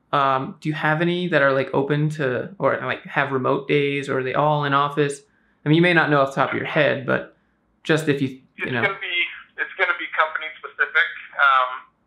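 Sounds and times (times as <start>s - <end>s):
person talking over speakerphone: 6.2s - 7.2s, 8.0s - 11.8s.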